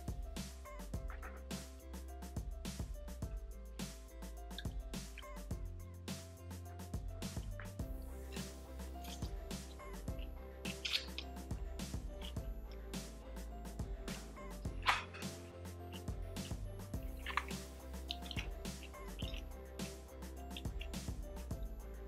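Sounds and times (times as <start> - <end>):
soft background music: 0.0 - 22.0
wet chewing: 7.4 - 12.4, 14.1 - 21.3.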